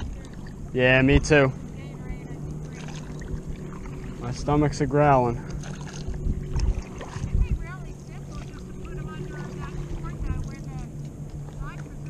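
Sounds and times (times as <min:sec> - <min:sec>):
paddle strokes in water: 0:00.0 - 0:12.0
steady low hum: 0:00.0 - 0:12.0
water against board: 0:00.0 - 0:12.0
wind buffeting microphone: 0:00.0 - 0:12.0.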